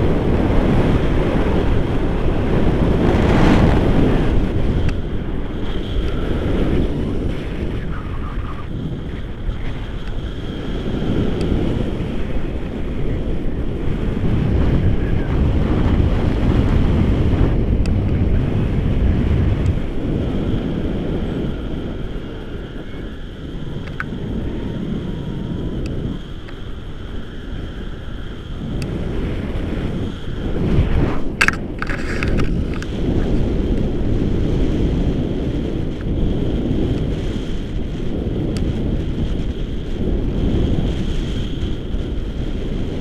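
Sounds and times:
wind buffeting camera microphone: 0.0 - 43.0.

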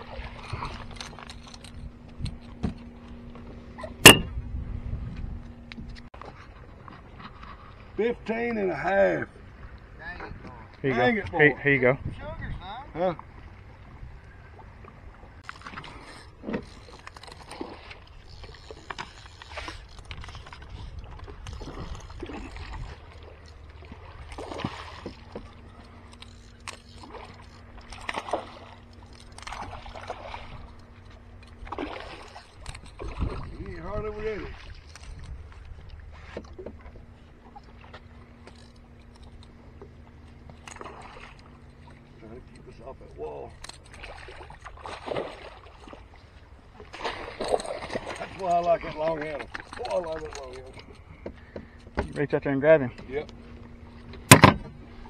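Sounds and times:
water sloshing against boat: 0.0 - 55.0
wind rumble: 1.6 - 6.1
steady low hum: 11.5 - 55.0.

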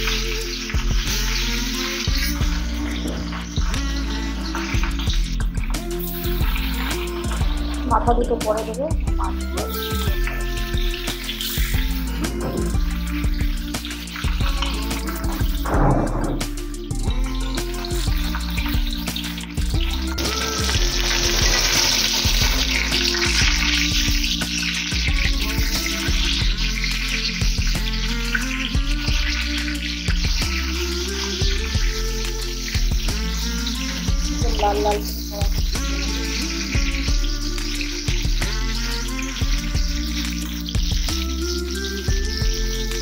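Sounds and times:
background music: 0.0 - 43.0
fish sizzling in hot oil: 0.0 - 43.0.

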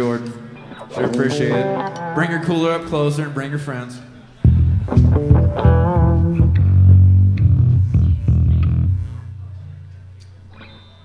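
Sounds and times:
wavering guitar note: 0.8 - 2.8, 4.4 - 11.0
plucked bass notes: 1.1 - 2.6, 4.4 - 10.1.

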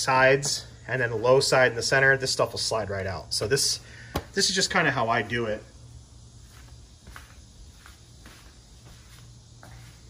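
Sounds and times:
footsteps on tiled floor: 6.4 - 10.0.

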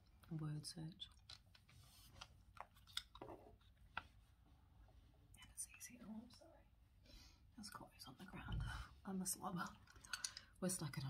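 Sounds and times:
person whispering: 5.3 - 6.7.

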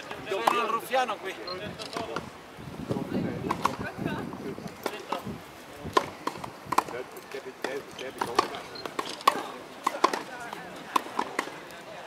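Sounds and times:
tennis rackets striking balls: 0.4 - 0.8, 5.9 - 7.0, 7.6 - 11.7
balls bouncing on grass: 4.6 - 11.8.

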